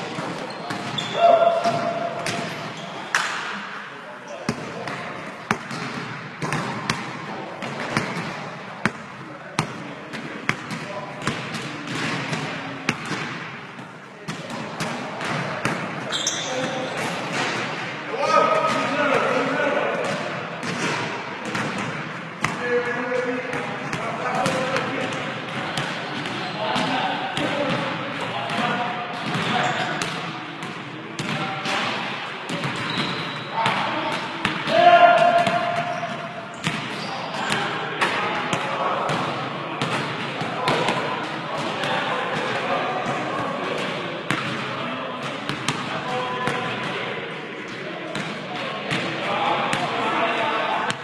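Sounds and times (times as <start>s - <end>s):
players shouting: 1.0s - 2.3s
basketballs bouncing on hardwood: 4.5s - 9.0s, 32.5s - 41.0s.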